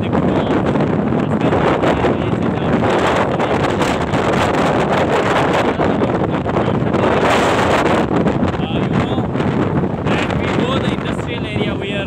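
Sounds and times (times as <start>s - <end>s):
road and engine noise: 0.0s - 12.0s
wind buffeting microphone: 0.0s - 12.0s.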